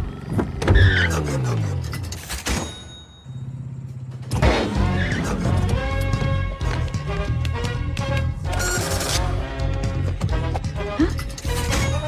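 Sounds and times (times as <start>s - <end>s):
music: 4.4s - 12.0s.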